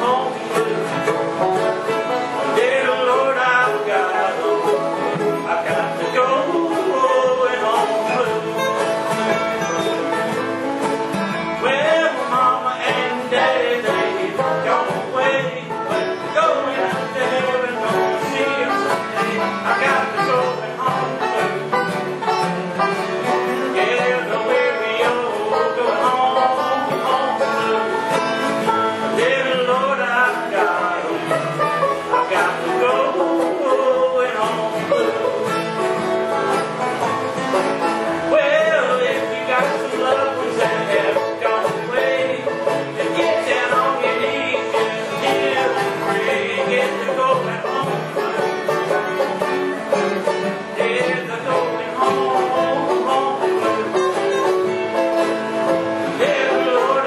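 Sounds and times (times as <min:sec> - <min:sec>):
banjo: 0:00.0 - 0:57.0
bluegrass band playing: 0:00.0 - 0:57.0.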